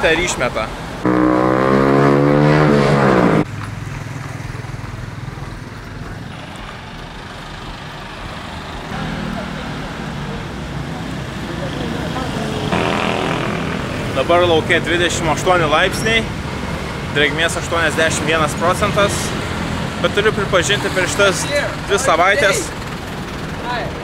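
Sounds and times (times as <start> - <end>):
passing motorbikes and cars: 0.0 - 24.0
loud steady drone: 1.0 - 3.5, 8.6 - 15.7.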